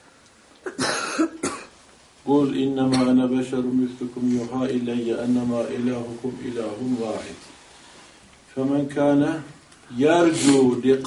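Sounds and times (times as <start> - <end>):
man coughing: 0.7 - 1.8.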